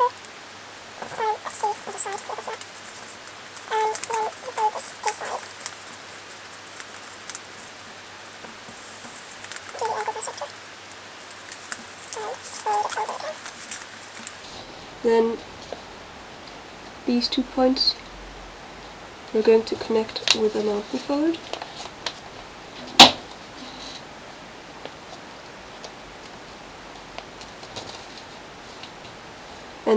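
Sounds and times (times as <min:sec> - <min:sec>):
paper crinkling: 0:00.0 - 0:14.5
short animal calls: 0:01.0 - 0:07.9, 0:09.3 - 0:10.7, 0:11.3 - 0:13.6.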